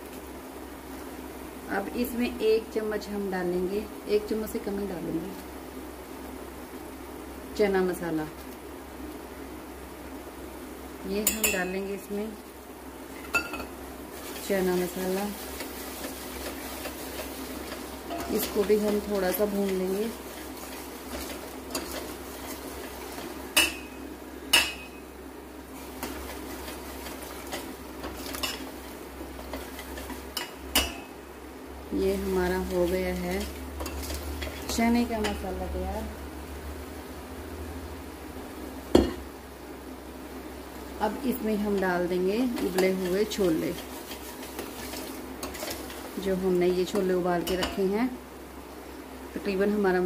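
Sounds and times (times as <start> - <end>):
spoon clinking against metal pot: 11.3 - 11.7
spoon stirring and scraping pot: 13.2 - 25.0, 25.7 - 31.1, 32.1 - 35.4, 41.7 - 47.9.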